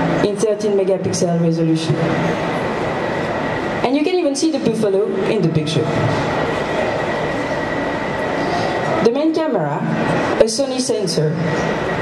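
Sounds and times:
crowded hall din: 0.0 - 12.0.

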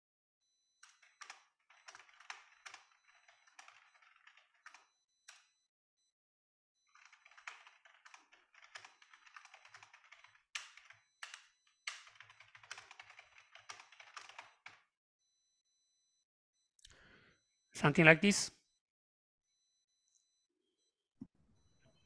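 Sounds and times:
keyboard typing: 0.8 - 5.5, 6.9 - 14.8.

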